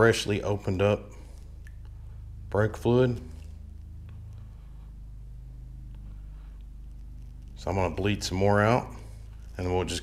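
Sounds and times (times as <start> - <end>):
steady low hum: 0.0 - 10.0
person speaking: 7.5 - 10.0.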